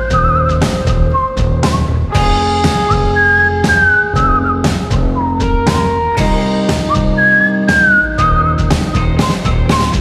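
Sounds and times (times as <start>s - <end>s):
drums: 0.0s - 10.0s
electric bass: 0.0s - 10.0s
guitar: 0.0s - 10.0s
whistled melody: 0.0s - 10.0s.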